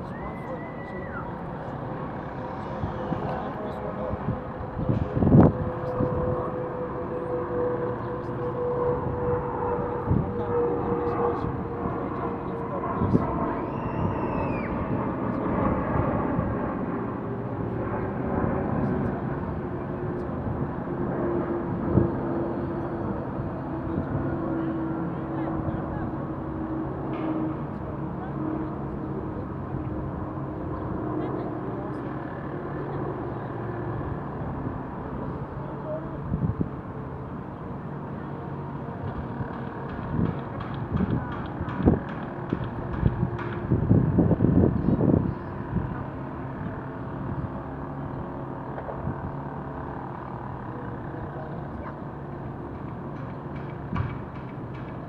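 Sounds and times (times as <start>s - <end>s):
distant traffic: 0.0s - 55.0s
faint voices: 0.0s - 55.0s
low engine drone: 0.0s - 55.0s.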